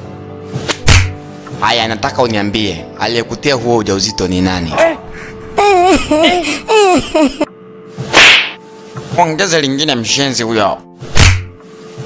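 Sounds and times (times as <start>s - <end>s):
sharp hiss-like blow effect: 8.0s - 8.6s.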